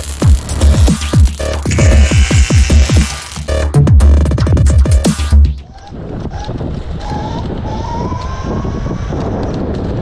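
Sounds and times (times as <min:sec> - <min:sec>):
electronic music with heavy bass: 0:00.0 - 0:05.6
electric scooter motor whine: 0:01.7 - 0:03.3
wind on microphone: 0:05.6 - 0:10.0.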